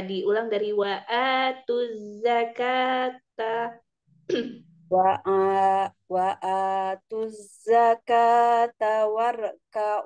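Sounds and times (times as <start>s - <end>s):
woman chanting recitation: 0.0s - 3.8s, 4.8s - 10.0s
throat clearing: 4.3s - 4.6s.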